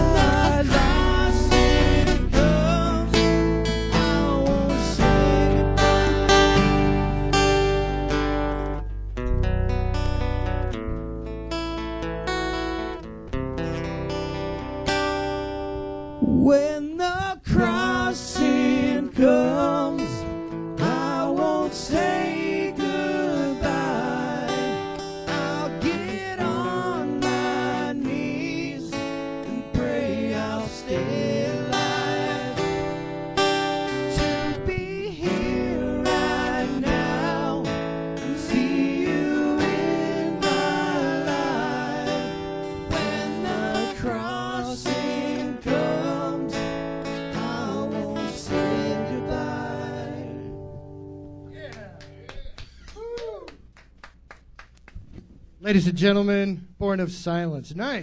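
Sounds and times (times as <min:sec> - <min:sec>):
person singing with vibrato: 0:00.0 - 0:07.9, 0:16.2 - 0:50.6
strummed acoustic guitar: 0:00.0 - 0:51.5.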